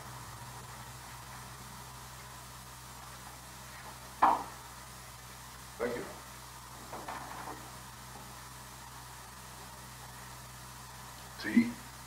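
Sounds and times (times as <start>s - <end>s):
film soundtrack hiss: 0.0s - 12.0s
low mains hum: 0.0s - 12.0s.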